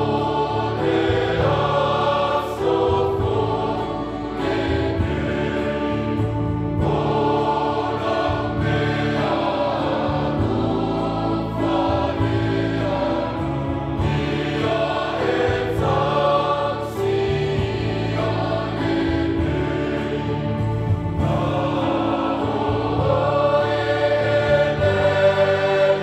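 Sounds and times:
mixed choir singing a hymn: 0:00.0 - 0:26.0.

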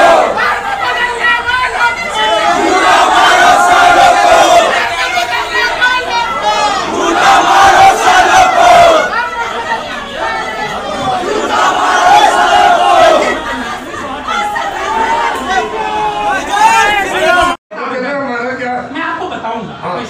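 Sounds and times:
crowd of men shouting: 0:00.0 - 0:17.6
long drawn-out yells: 0:00.0 - 0:17.6.

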